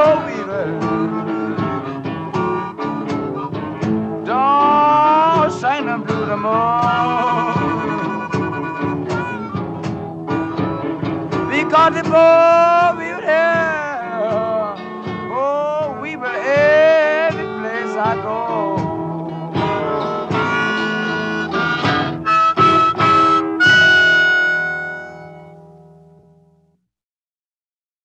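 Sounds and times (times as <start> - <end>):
blues harmonica wailing: 0.0 - 25.6
guitar and bass: 0.0 - 26.8.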